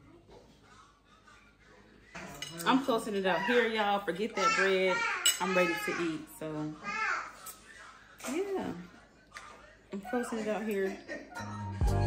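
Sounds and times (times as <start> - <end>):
cutlery clinking on plate: 2.2 - 2.8, 5.2 - 5.6.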